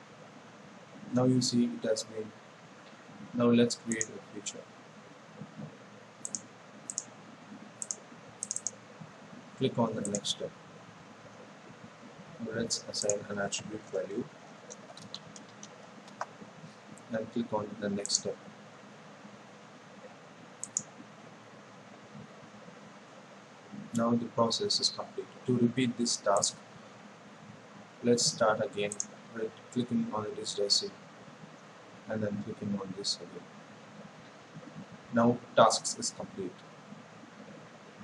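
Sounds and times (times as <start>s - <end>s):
faint steady hiss: 0.0s - 38.0s
computer mouse clicking: 3.9s - 4.2s, 5.4s - 8.8s, 10.0s - 10.3s, 13.0s - 13.2s, 14.6s - 17.1s, 20.0s - 21.1s, 28.8s - 29.2s.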